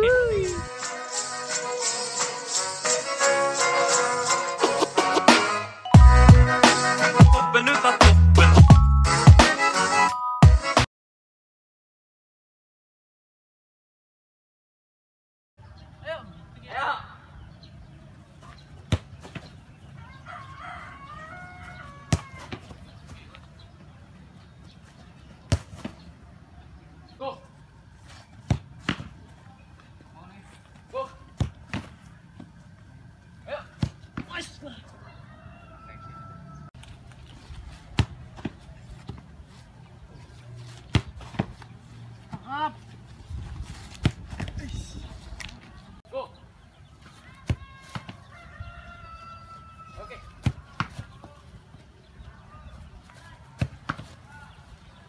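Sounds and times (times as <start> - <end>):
footballs kicked hard: 18.8 - 19.6, 22.0 - 23.2, 25.4 - 26.0, 28.4 - 29.2, 31.3 - 32.0, 37.7 - 39.3, 40.8 - 42.5, 43.4 - 44.8, 50.4 - 51.3, 53.5 - 54.3
ball striking gloves: 22.1 - 22.8, 25.5 - 26.0, 28.4 - 29.2, 37.9 - 39.3, 40.8 - 41.7, 43.9 - 44.6, 50.4 - 51.2.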